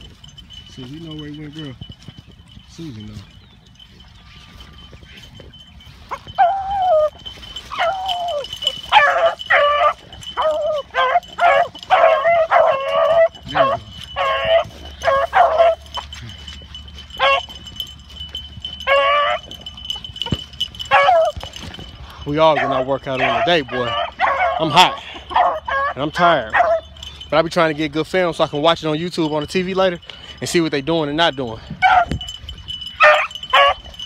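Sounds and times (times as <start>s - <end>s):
dogs yelping: 0.0s - 2.6s, 3.2s - 28.6s, 31.6s - 34.0s
dogs baying: 0.0s - 34.0s.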